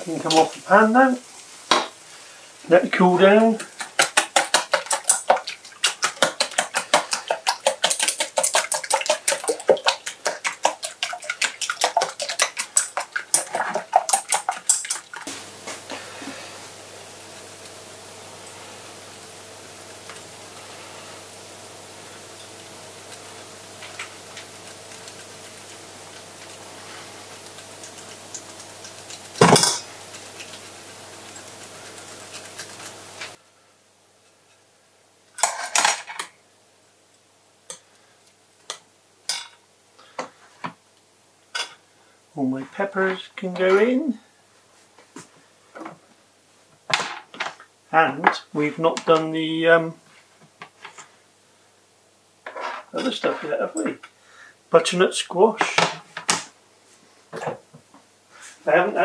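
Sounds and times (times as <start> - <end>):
fork beating eggs in metal bowl: 3.0 - 15.3, 22.2 - 33.4
low steady hum: 14.1 - 34.1.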